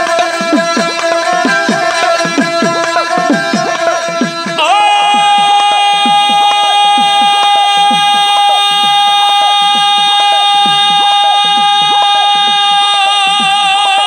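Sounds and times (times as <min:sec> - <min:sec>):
bowed string instrument: 0:00.0 - 0:13.1
man singing long high note: 0:04.6 - 0:14.0.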